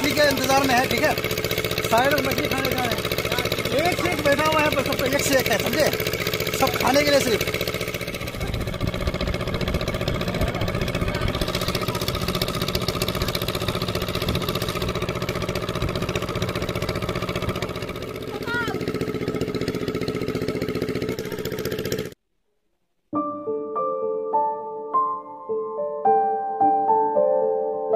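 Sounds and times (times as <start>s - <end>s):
engine-driven water pump running: 0.0s - 22.2s.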